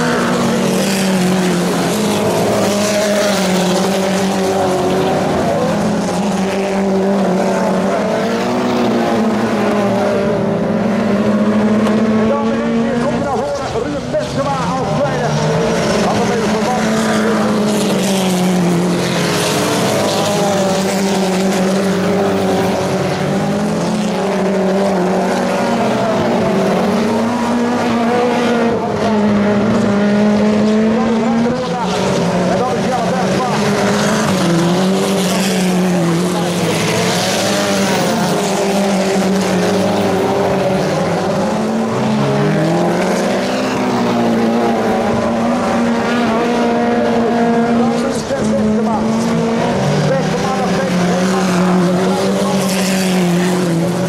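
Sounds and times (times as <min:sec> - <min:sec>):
racing car engines accelerating: 0:00.0 - 0:54.0.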